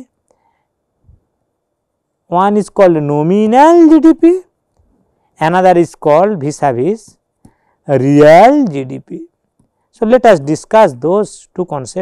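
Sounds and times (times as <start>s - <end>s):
man speaking: 2.3s - 4.5s, 5.4s - 7.1s, 7.9s - 9.3s, 10.0s - 12.0s.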